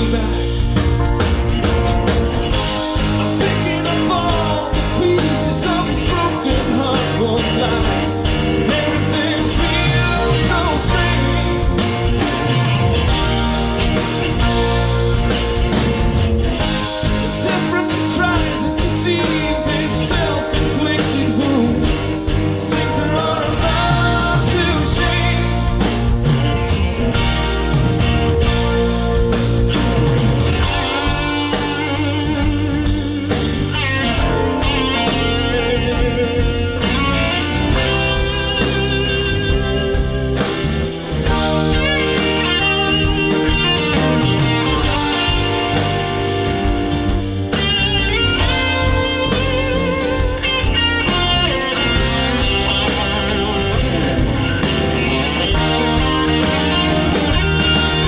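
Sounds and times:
live rock band playing: 0:00.0 - 0:58.0.

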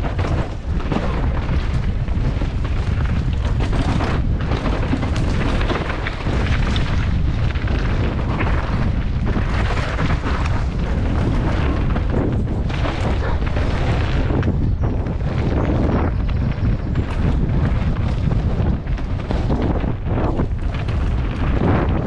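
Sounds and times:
bike clattering over bumps: 0:00.0 - 0:22.0
wind buffeting microphone: 0:00.0 - 0:22.0.

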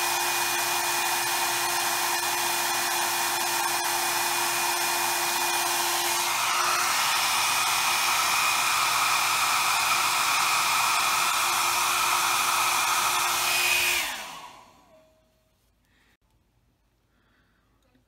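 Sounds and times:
hair dryer blowing: 0:00.0 - 0:15.2.

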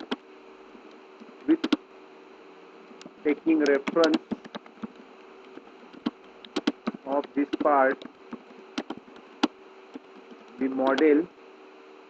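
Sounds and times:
keyboard keystrokes: 0:00.0 - 0:00.2, 0:01.2 - 0:01.8, 0:03.0 - 0:11.1
faint steady hum: 0:00.0 - 0:12.0.

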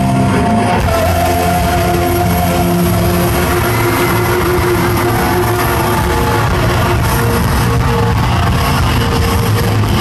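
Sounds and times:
live rock band music: 0:00.0 - 0:10.0.

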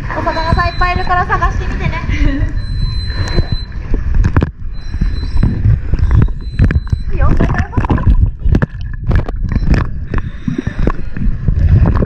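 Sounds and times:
muffled underwater rumble: 0:00.0 - 0:12.0
regulator breathing and bubbles: 0:02.2 - 0:12.0.

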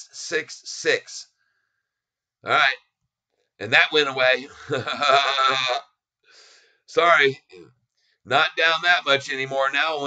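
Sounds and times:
man laughing: 0:04.2 - 0:05.8
faint breath out: 0:06.3 - 0:06.9.

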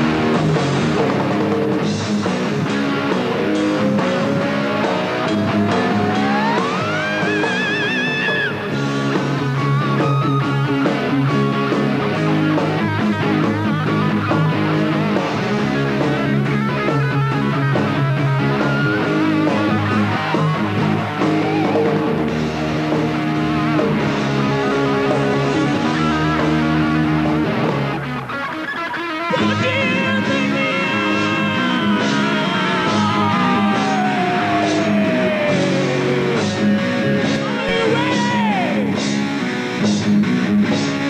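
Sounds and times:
rock band playing: 0:00.0 - 0:41.0.

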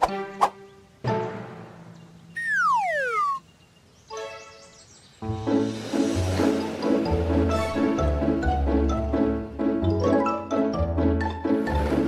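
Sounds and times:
background music: 0:00.0 - 0:03.4, 0:04.1 - 0:12.0
falling whistle tone: 0:02.4 - 0:03.4.

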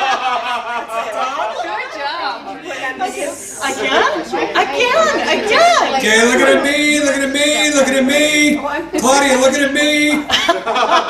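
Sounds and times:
people chuckling: 0:00.0 - 0:01.8, 0:09.0 - 0:11.0
people talking: 0:00.7 - 0:11.0.

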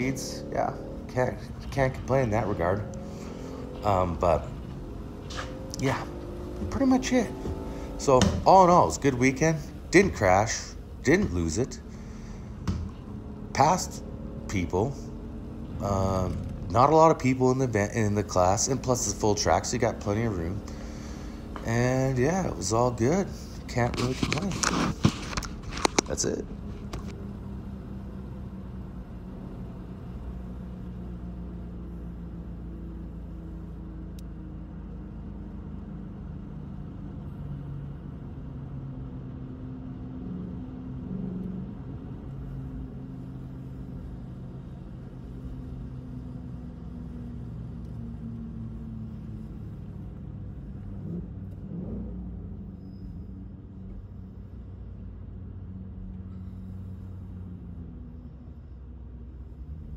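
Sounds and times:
car engine heard from inside cabin: 0:00.0 - 0:59.9.

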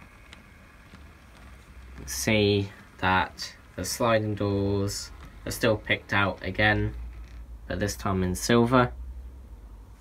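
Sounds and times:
model coaches rolling on track: 0:00.0 - 0:08.9.

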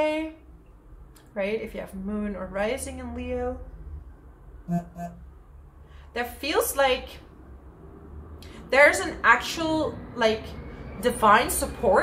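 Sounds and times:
steady low hum: 0:00.0 - 0:10.2
woman humming syllables: 0:04.7 - 0:05.3.

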